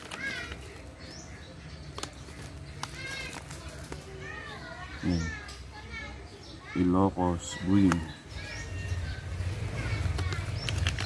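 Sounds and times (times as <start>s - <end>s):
children calling and playing: 0.0s - 11.0s.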